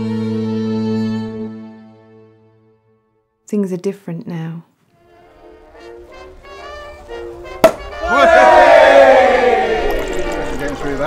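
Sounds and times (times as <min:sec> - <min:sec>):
soft music with held notes: 0:00.0 - 0:03.4, 0:04.9 - 0:08.4
champagne cork popping: 0:07.5 - 0:08.0.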